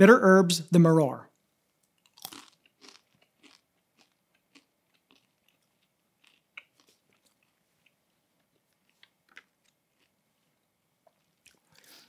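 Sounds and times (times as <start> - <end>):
cracker crunching: 1.8 - 12.0.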